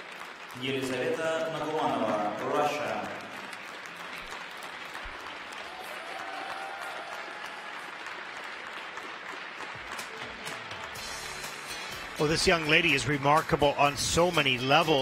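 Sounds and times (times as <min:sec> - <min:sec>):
audience applauding: 0:00.0 - 0:15.0.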